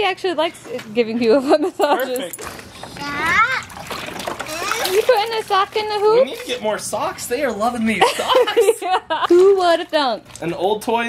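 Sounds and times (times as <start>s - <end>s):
water splashing and trickling: 1.8s - 11.0s
child's high-pitched voice: 2.9s - 3.7s, 4.4s - 5.0s.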